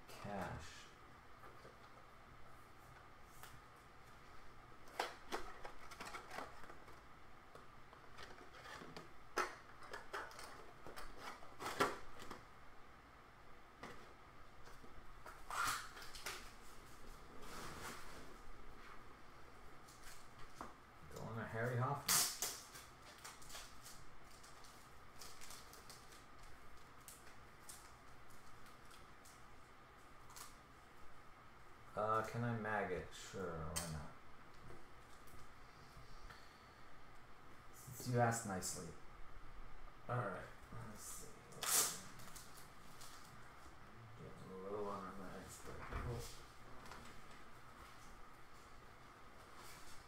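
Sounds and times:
plastic sleeves rustling: 0:03.2 - 0:12.5, 0:13.8 - 0:19.2, 0:19.8 - 0:30.7.

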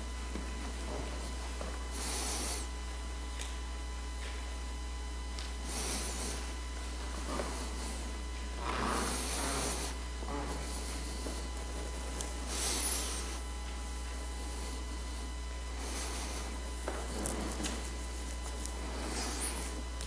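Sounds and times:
steady low hum: 0:00.0 - 0:20.0
rustling or shuffling: 0:05.7 - 0:20.0.

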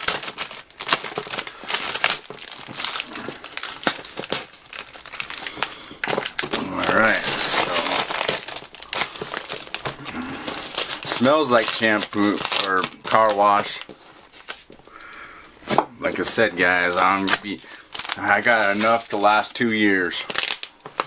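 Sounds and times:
plastic wrapping crinkling and tearing: 0:00.0 - 0:21.0.

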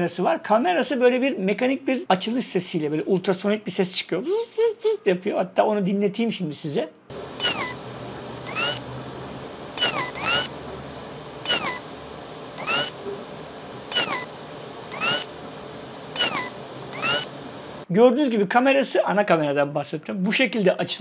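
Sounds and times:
camera lens motor whirring: 0:07.4 - 0:08.9, 0:09.8 - 0:10.6, 0:11.4 - 0:13.0, 0:13.9 - 0:15.4, 0:16.1 - 0:17.4.

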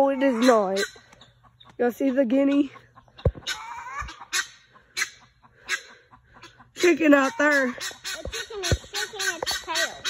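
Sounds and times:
guinea fowl calling: 0:00.0 - 0:10.0.

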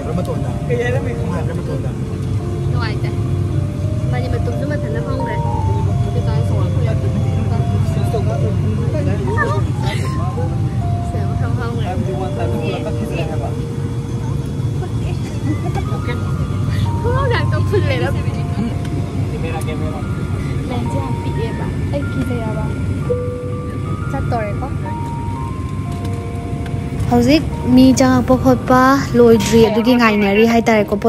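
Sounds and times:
people talking: 0:00.0 - 0:02.1, 0:04.1 - 0:25.1, 0:27.0 - 0:31.0
airliner cabin drone: 0:00.0 - 0:31.0.

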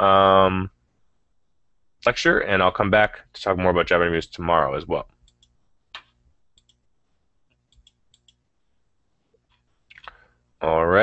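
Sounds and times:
faint computer clicks: 0:05.2 - 0:06.8, 0:07.5 - 0:08.4.

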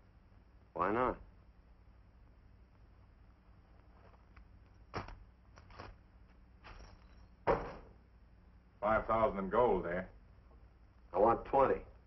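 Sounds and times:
knocks and scuffs: 0:03.8 - 0:06.0
louder thump: 0:07.4 - 0:08.0.

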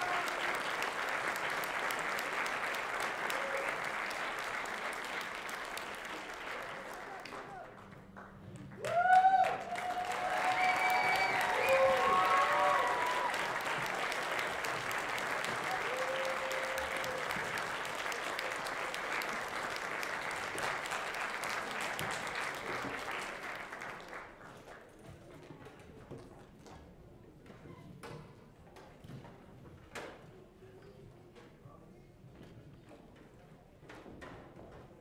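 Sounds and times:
audience applauding: 0:00.0 - 0:24.9
whoops from audience: 0:08.8 - 0:13.7, 0:15.6 - 0:17.4.

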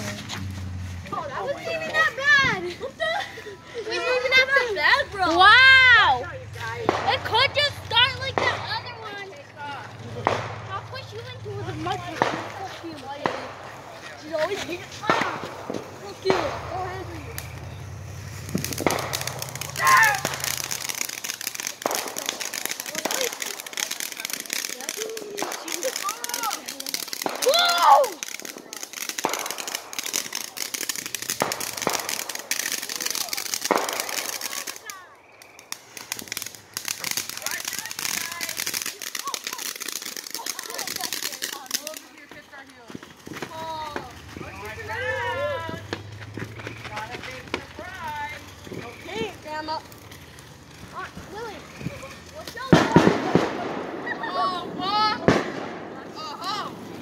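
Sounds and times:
firework hissing and crackling: 0:00.0 - 0:57.0
people shouting and laughing: 0:01.0 - 0:17.6, 0:18.7 - 0:35.2, 0:43.5 - 0:48.4, 0:50.9 - 0:57.0.

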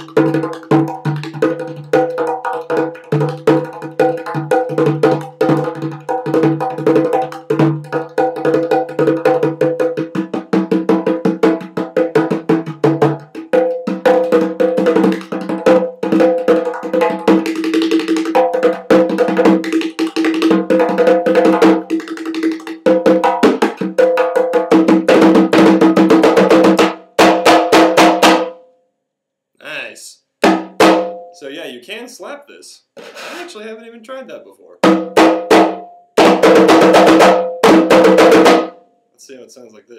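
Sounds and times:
hand drum rolling rhythm: 0:00.0 - 0:28.6, 0:30.4 - 0:31.4, 0:34.8 - 0:38.8.

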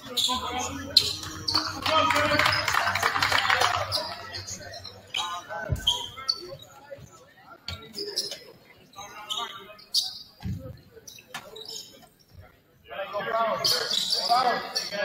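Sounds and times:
scattered voices: 0:00.0 - 0:15.0
team shouting and clapping: 0:01.5 - 0:04.3.

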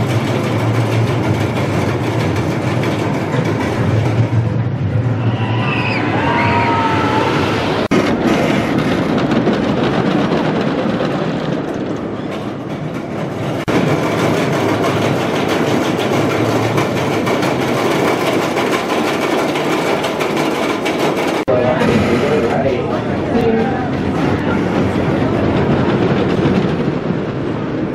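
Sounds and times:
roller coaster wheels rumbling: 0:00.0 - 0:27.9.

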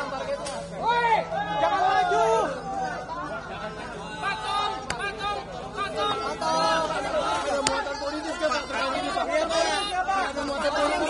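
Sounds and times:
crowd of voices talking: 0:00.0 - 0:11.0.

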